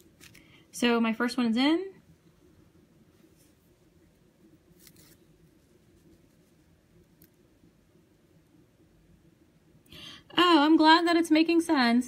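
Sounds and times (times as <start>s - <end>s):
thread rustling through beads: 0.0s - 0.8s, 2.1s - 7.7s
faint room hum: 0.0s - 12.0s.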